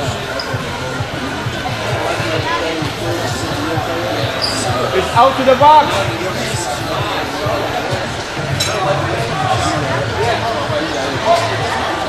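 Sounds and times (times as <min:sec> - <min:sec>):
background voices: 0:00.0 - 0:12.0.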